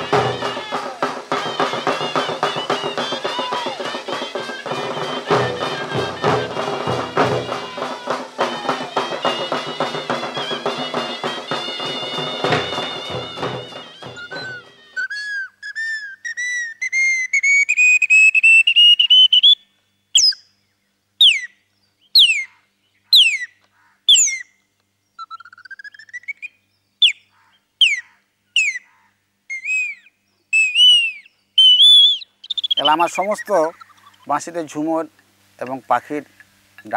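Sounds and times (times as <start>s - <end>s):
whistle imitating bird calls: 0.0s - 20.5s, 21.2s - 21.6s, 22.2s - 22.5s, 23.1s - 24.5s, 25.2s - 27.2s, 27.8s - 28.9s, 29.5s - 34.3s.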